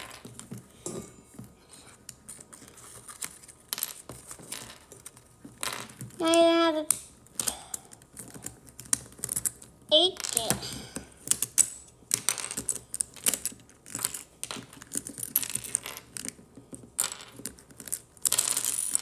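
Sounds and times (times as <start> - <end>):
child vocal sound: 9.9 - 11.0
plastic cube pieces clicking: 11.2 - 16.4, 17.0 - 19.0.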